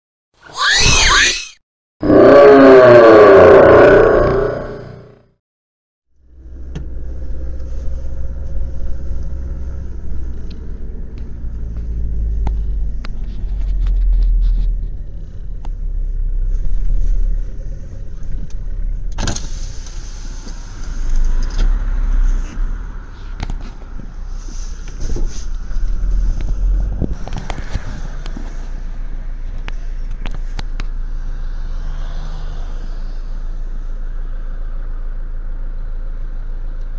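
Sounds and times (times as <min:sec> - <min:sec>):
car and traffic rumble: 0:06.1 - 0:36.9.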